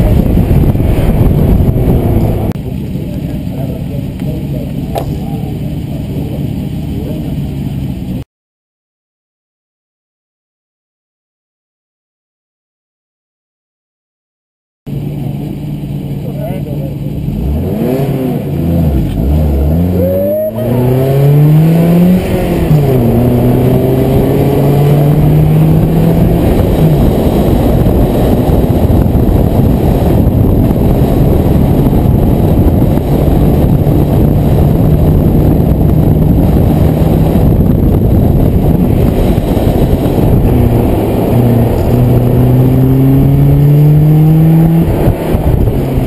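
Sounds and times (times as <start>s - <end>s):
car engine accelerating and revving: 0.0s - 8.2s, 16.8s - 46.0s
road and tyre noise: 0.0s - 8.3s, 14.9s - 46.0s.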